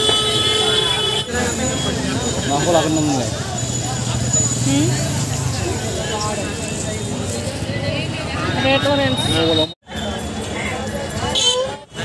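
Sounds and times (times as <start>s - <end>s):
street crowd talking: 0.0s - 12.0s.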